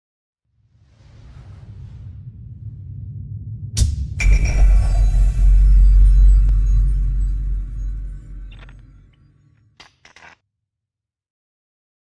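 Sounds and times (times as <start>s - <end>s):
low rumble: 0.6s - 9.5s
deep boom with ringing tones: 3.6s - 9.1s.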